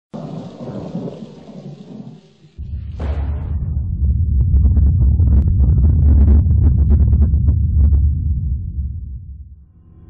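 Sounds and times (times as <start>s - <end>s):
rain-like hiss: 0.2s - 2.6s
thunder rumble: 0.2s - 9.5s.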